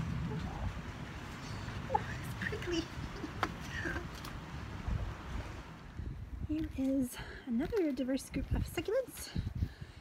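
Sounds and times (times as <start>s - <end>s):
wind on microphone: 0.0s - 7.4s, 8.3s - 10.0s.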